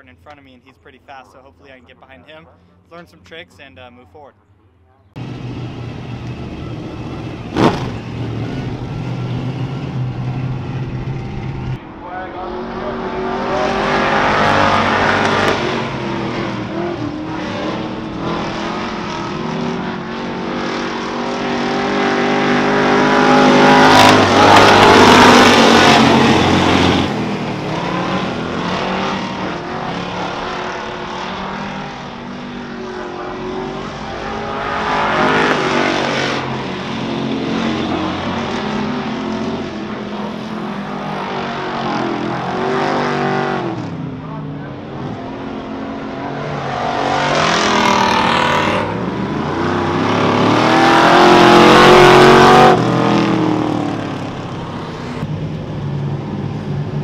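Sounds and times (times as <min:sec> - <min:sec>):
race car engines circling: 0:00.0 - 0:57.0
sharp crack: 0:07.5 - 0:08.0.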